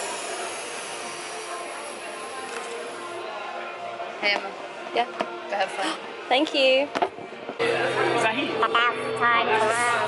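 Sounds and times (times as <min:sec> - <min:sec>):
helium hissing into balloon: 0:00.0 - 0:03.2.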